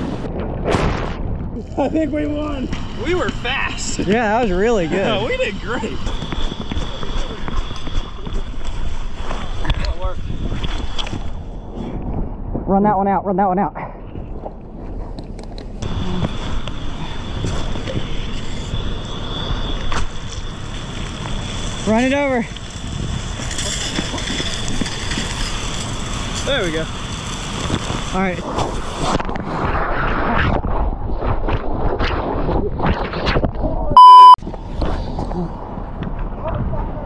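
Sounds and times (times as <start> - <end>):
wind buffeting microphone: 0.0 - 13.3, 13.9 - 37.0
low rumble: 0.0 - 28.6
footsteps: 5.9 - 9.9
water rushing from fire hose: 20.0 - 29.6
faint steady high tone: 34.0 - 34.4.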